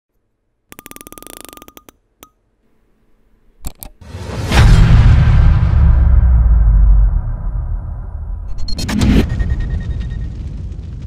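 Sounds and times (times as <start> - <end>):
electronic ticks: 0.7 - 2.4
faint beep tone: 8.6 - 10.4.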